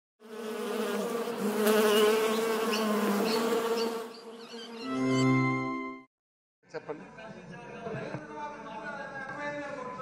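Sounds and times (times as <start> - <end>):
bee buzzing: 0.2 - 5.2.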